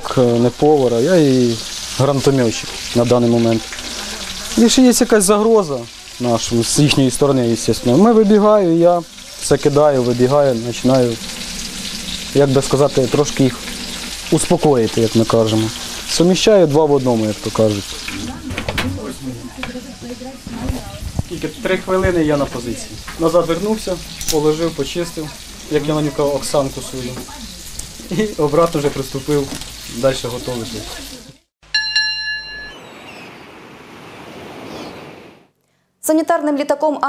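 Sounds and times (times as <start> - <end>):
food sizzling in a pan: 0.0 - 31.5
short ringing chime: 31.7 - 33.3.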